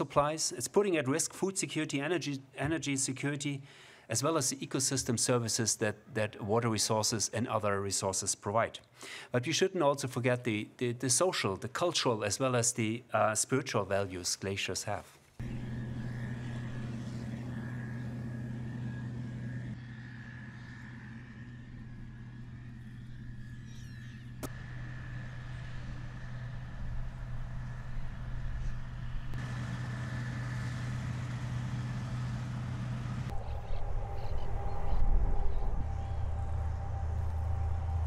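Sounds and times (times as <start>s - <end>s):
farm machinery engines running: 15.4s - 33.4s.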